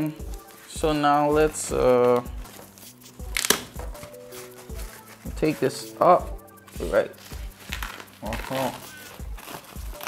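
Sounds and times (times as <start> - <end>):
foam sleeve rustling and crinkling: 0.0 - 10.0.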